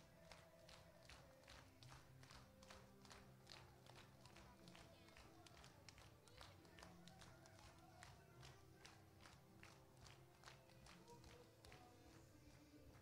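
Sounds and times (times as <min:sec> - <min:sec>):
people clapping: 0:00.0 - 0:13.0.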